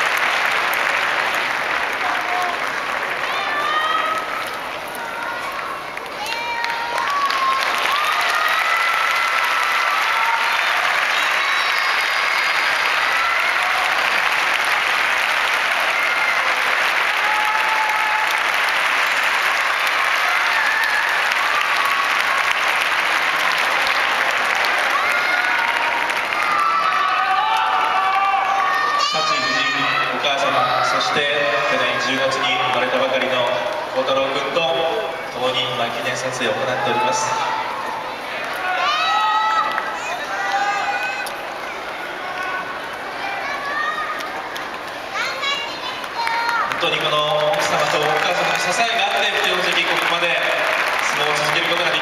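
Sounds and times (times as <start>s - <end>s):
large audience applauding: 0.0s - 52.0s.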